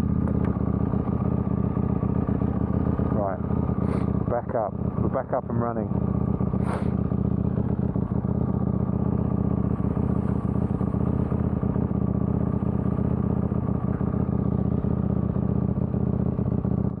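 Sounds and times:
motorcycle engine idling: 0:00.0 - 0:17.0.

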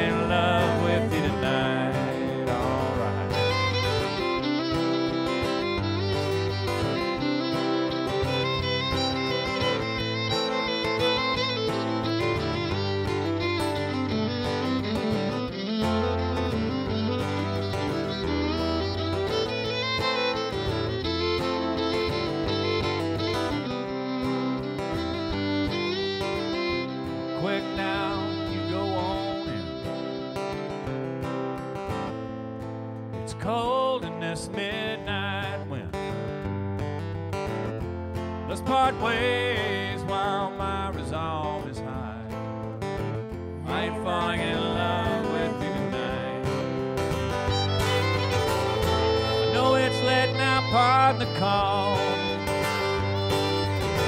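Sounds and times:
acoustic guitar strumming chords: 0:00.0 - 0:54.0
fiddle playing: 0:00.0 - 0:54.0.

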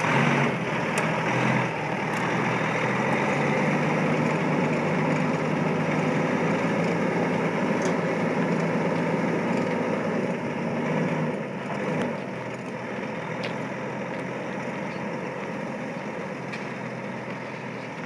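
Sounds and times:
diesel truck engine running: 0:00.0 - 0:18.0.

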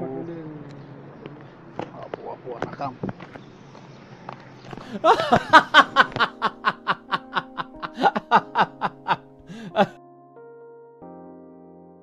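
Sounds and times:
person laughing: 0:04.8 - 0:10.0
background music sustained notes: 0:04.8 - 0:11.9.

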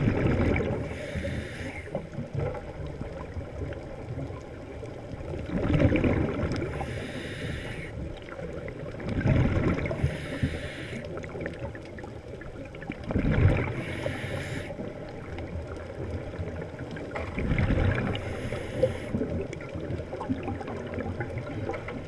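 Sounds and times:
exhaust bubbles rushing underwater: 0:00.0 - 0:07.1, 0:08.0 - 0:10.4, 0:11.0 - 0:22.0
regulator breathing hiss: 0:00.9 - 0:02.0, 0:06.8 - 0:08.0, 0:10.0 - 0:11.2, 0:13.8 - 0:14.8, 0:18.2 - 0:19.2.

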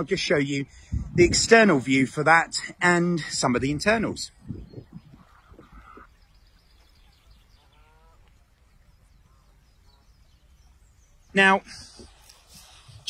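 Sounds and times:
faint distant animal call: 0:04.9 - 0:10.8.

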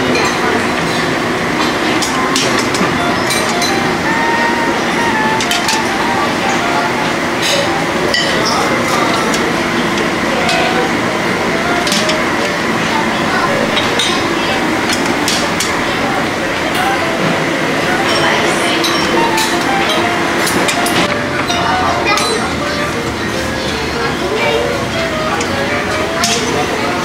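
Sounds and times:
clinking plates and cutlery: 0:00.0 - 0:06.8, 0:07.4 - 0:16.0, 0:17.9 - 0:27.0
indistinct chatter of diners: 0:00.0 - 0:27.0.

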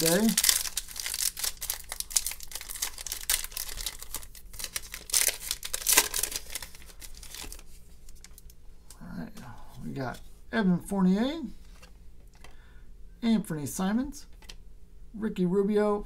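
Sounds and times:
foil wrapper crinkling and tearing: 0:00.0 - 0:08.6.

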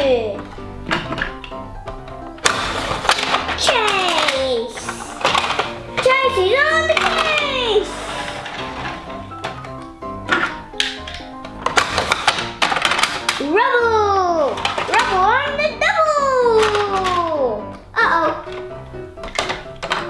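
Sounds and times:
background music: 0:00.0 - 0:20.0
plastic toy vehicles clattering on track: 0:02.4 - 0:13.5, 0:14.4 - 0:15.6, 0:18.4 - 0:20.0
child's voice gliding up and down: 0:13.5 - 0:18.4.

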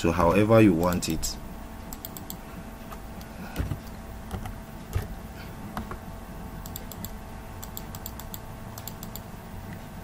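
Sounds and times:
low steady hum: 0:00.0 - 0:10.0
computer keyboard clicks: 0:06.6 - 0:09.3.

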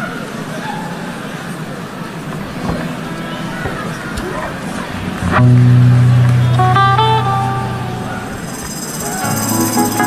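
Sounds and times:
murmur of audience talking: 0:00.0 - 0:10.0
loud low amplified note: 0:02.4 - 0:08.5.

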